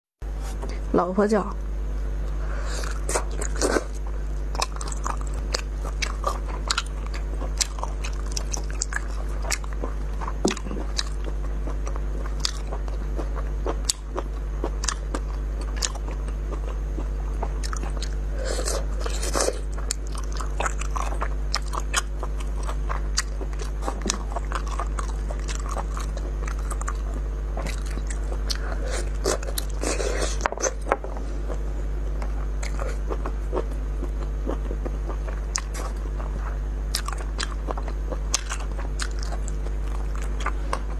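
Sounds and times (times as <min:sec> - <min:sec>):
low electrical hum: 0:00.2 - 0:40.9
chewing meat on the bone: 0:02.9 - 0:18.2, 0:18.8 - 0:40.9.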